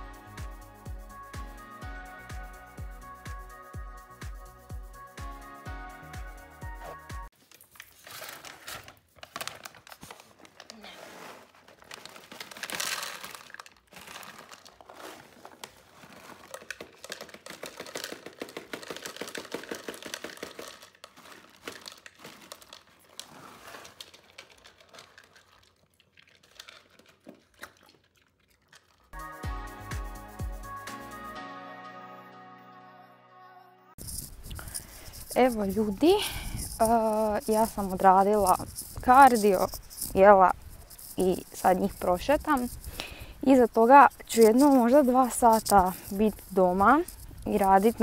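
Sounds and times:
background music: 0.0 - 7.3, 29.2 - 34.0
bag rustling: 9.9 - 25.7, 34.0 - 48.0
kibble rattling into bowls: 15.7 - 23.1, 34.0 - 48.0.

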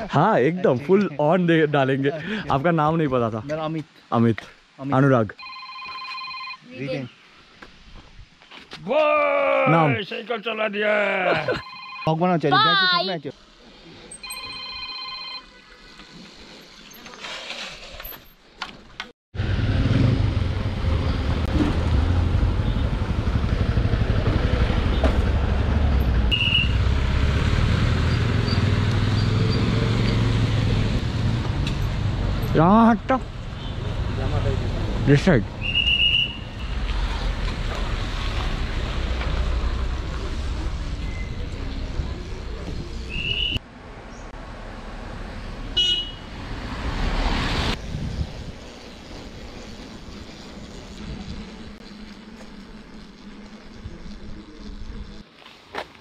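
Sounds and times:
bell-like ringing tone: 5.4 - 6.8, 11.5 - 12.2, 14.2 - 15.5
tyre noise on wet asphalt: 33.2 - 43.6, 44.4 - 52.7
wind rushing on microphone: 47.4 - 51.8.

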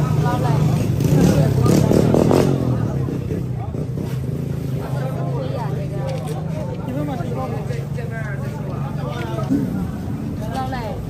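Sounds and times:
market chatter: 0.0 - 11.0
voices talking: 0.0 - 11.0.

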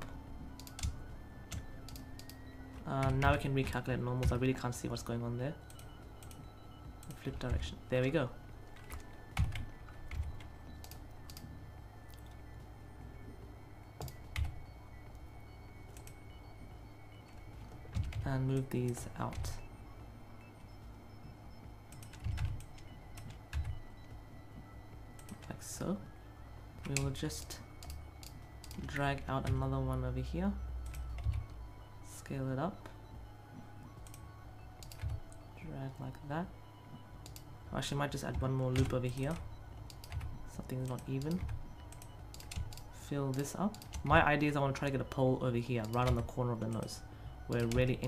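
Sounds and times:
low steady hum: 0.0 - 48.0
keyboard and mouse clicks: 0.5 - 4.5, 5.6 - 7.6, 8.7 - 12.4, 13.9 - 15.2, 15.9 - 16.3, 17.2 - 19.7, 21.9 - 23.8, 25.2 - 25.6, 26.8 - 29.7, 30.8 - 31.6, 34.0 - 35.5, 37.2 - 37.5, 38.2 - 44.2, 45.8 - 46.9, 47.5 - 48.0
keyboard keystroke clicks: 34.8 - 35.4, 39.8 - 44.1.

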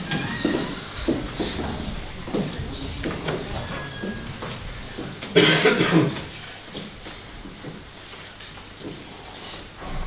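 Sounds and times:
person coughing: 5.3 - 6.3.

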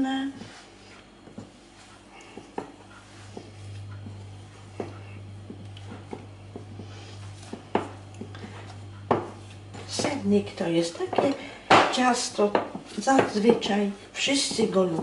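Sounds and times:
hands kneading dough: 0.0 - 15.0
low steady hum: 0.0 - 15.0.

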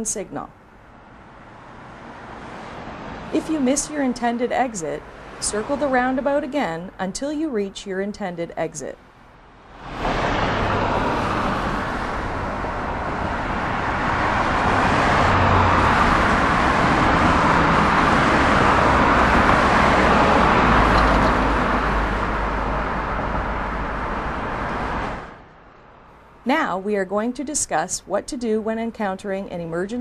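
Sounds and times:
car driving past: 0.9 - 3.6, 9.5 - 26.1
heavy truck driving past: 9.5 - 25.5.

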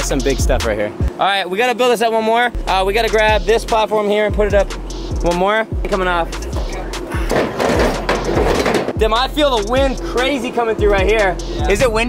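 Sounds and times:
metal scaffold scraping and rattling: 6.5 - 9.0.

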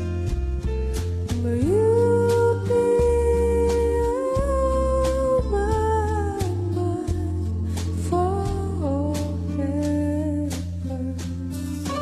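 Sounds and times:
backing accompaniment with bass: 0.0 - 12.0.

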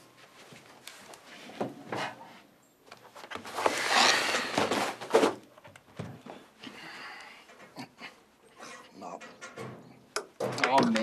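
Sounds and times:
paper rustling: 3.1 - 5.4
man breathing heavily: 6.2 - 8.7
knocks and clicks of objects: 9.2 - 11.0.

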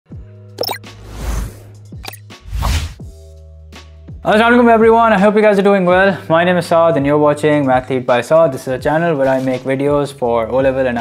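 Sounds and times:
whoosh: 2.4 - 3.0.

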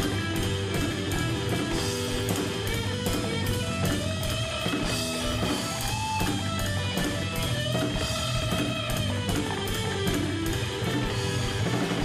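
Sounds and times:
rock guitar: 0.0 - 12.0
steady drum beat: 0.0 - 12.0.

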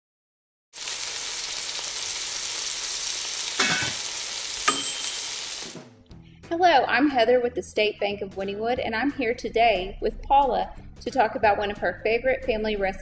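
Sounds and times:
food sizzling in a pan: 0.8 - 5.8
light ringing clink: 4.7 - 5.2.

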